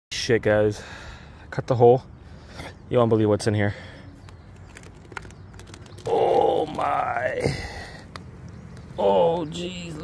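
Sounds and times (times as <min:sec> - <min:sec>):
light clicks and scrapes of shingles: 0:04.2 - 0:06.9.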